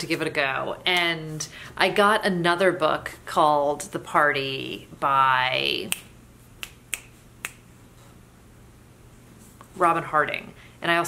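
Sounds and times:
finger snaps: 0:05.9 - 0:07.7.

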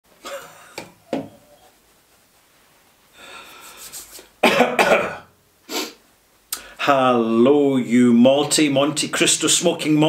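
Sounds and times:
man coughing: 0:04.4 - 0:05.3.

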